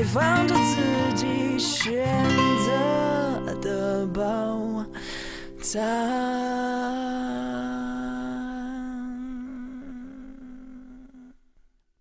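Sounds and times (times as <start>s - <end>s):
pop song accompaniment: 0.0s - 10.7s
man singing: 0.0s - 11.3s.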